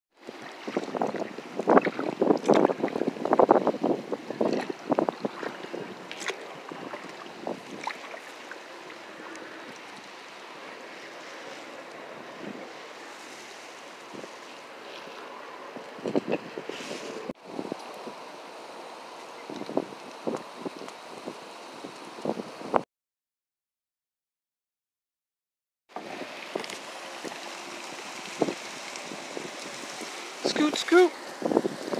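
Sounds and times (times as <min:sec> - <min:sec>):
wind noise on microphone: 0:00.2 - 0:08.2, 0:12.1 - 0:12.9, 0:15.6 - 0:18.3, 0:19.3 - 0:22.8, 0:26.0 - 0:31.9
water lapping against hull: 0:00.2 - 0:22.4, 0:25.9 - 0:31.9.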